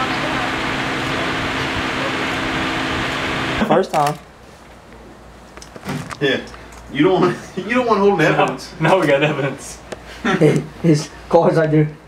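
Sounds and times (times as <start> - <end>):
steady rushing noise: 0.0 - 3.7.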